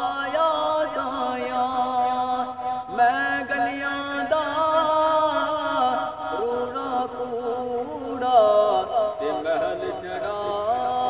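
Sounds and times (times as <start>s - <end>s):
man singing melismatic notes: 0.0s - 11.0s.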